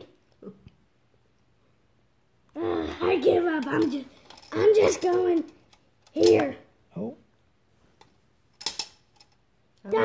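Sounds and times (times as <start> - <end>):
plastic checker clattering into grid: 8.6 - 9.3.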